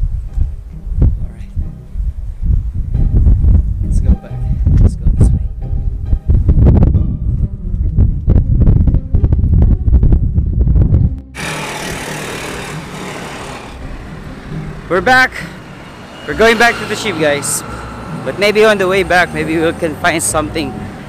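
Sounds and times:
uneven low rumbling: 0.0s - 19.6s
roadside traffic hiss: 11.4s - 21.0s
faint musical tones: 13.8s - 21.0s.

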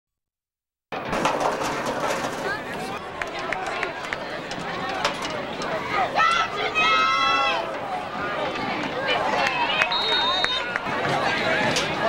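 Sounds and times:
crowd chattering and shouting: 0.9s - 12.0s
whistle tone: 9.9s - 10.7s.

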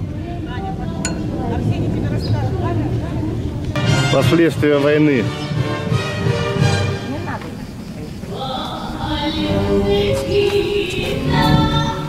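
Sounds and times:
steady low rumble: 0.0s - 3.8s
voices talking: 0.2s - 5.5s, 6.8s - 11.2s.

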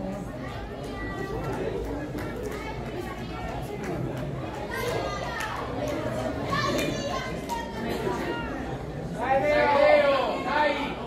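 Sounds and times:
background chatter: 0.0s - 11.0s
young people calling and shouting: 0.0s - 11.0s.

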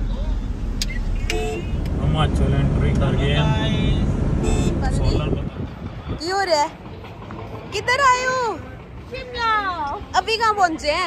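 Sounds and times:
car cabin road rumble: 0.0s - 6.6s.

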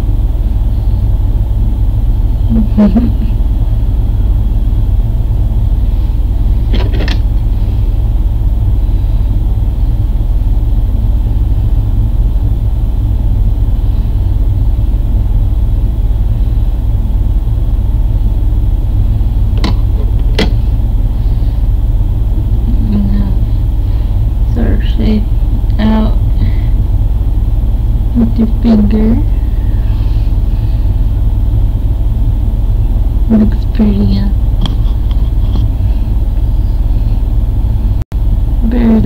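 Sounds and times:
loud low rumble: 0.0s - 39.0s.

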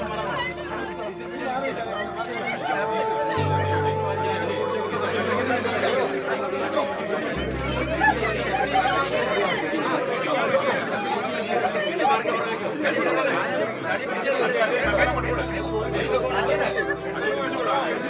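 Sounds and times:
murmur of crowd chatter: 0.0s - 18.0s.

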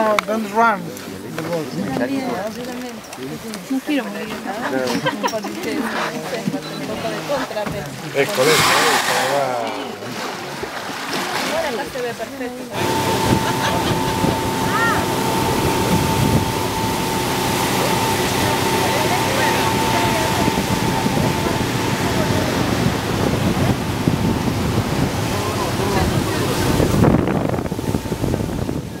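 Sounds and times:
water churning: 0.4s - 29.0s
motorboat engine running: 12.5s - 29.0s
steady whine: 12.8s - 29.0s
wind buffeting microphone: 12.8s - 29.0s.

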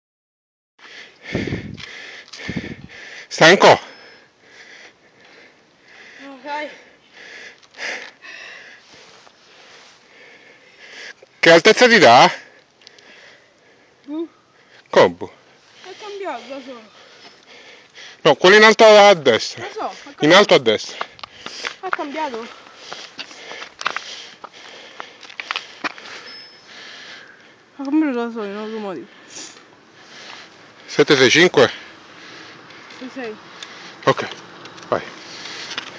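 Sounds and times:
person breathing hard: 0.8s - 11.2s, 12.4s - 14.9s, 15.6s - 18.3s, 20.9s - 27.7s, 28.6s - 30.9s, 31.7s - 32.9s.

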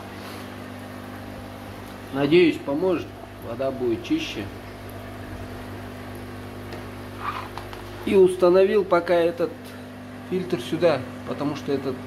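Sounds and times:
air pump electric hum: 0.0s - 12.0s.

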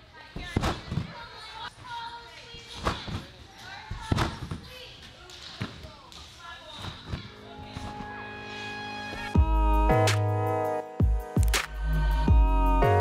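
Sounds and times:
trampoline bed thudding: 3.9s - 4.7s
steady music: 7.3s - 13.0s.

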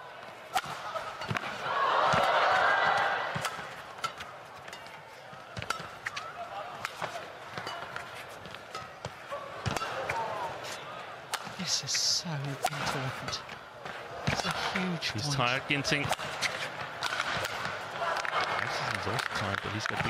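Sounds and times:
crowd cheering: 0.0s - 4.4s, 9.2s - 11.5s, 13.6s - 20.0s
racket striking shuttlecock: 0.5s - 2.4s, 3.0s - 10.3s
shoes squeaking on court: 16.2s - 17.0s.

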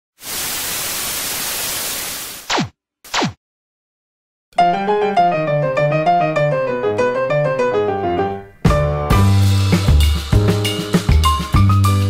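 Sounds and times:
tv static hiss: 0.2s - 2.5s.

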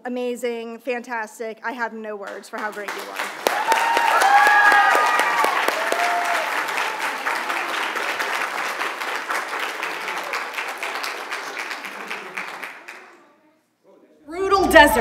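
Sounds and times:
congregation applauding: 2.6s - 13.2s
people whooping: 3.4s - 8.5s.

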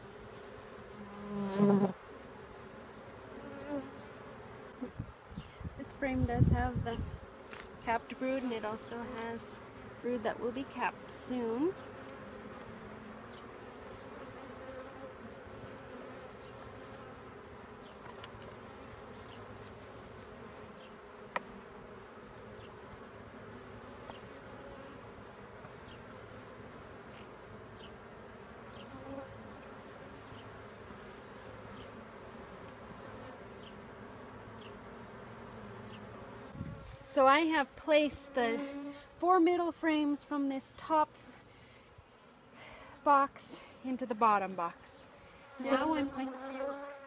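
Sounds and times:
honeybees buzzing: 0.0s - 47.0s.

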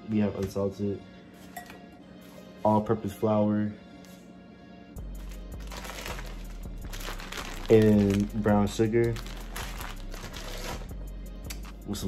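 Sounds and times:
plastic bag crinkling: 5.2s - 10.9s.

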